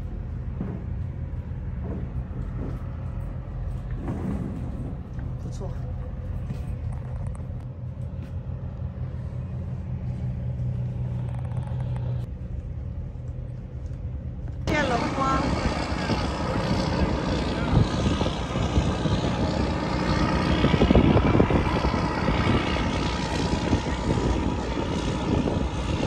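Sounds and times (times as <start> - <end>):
boat engine drone: 0.0 - 26.0
wind on deck: 0.0 - 26.0.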